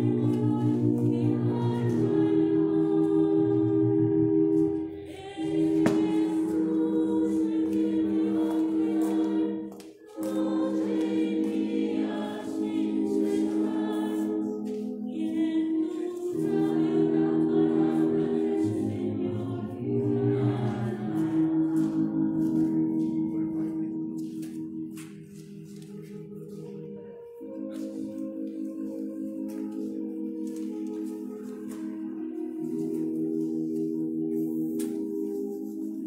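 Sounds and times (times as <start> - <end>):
choir singing a slow hymn: 0.0 - 24.0.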